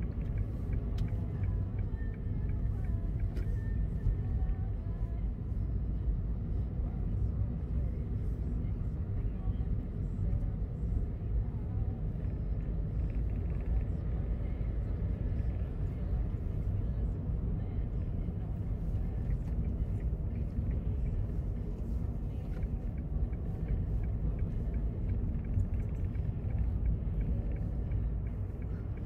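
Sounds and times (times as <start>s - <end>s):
car engine rumble: 0.0s - 29.0s.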